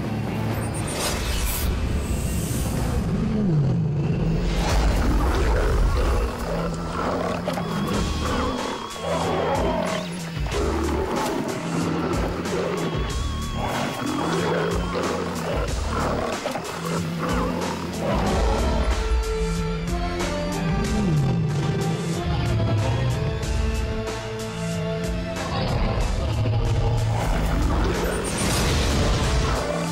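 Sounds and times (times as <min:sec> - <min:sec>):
dramatic soundtrack music: 0:00.0 - 0:29.9
big cats roaring: 0:03.2 - 0:19.3, 0:25.4 - 0:29.9.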